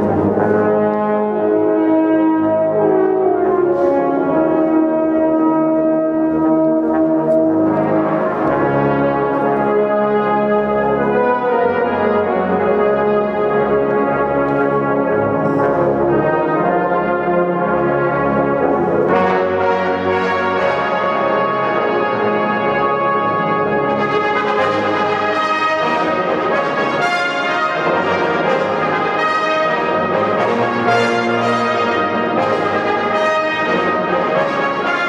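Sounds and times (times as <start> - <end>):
brass ensemble playing chords: 0.0 - 35.0.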